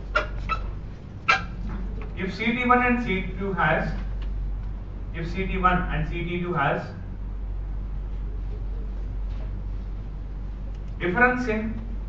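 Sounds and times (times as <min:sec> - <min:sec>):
low electrical hum: 0:00.0 - 0:12.0
dog barking: 0:01.3 - 0:01.6.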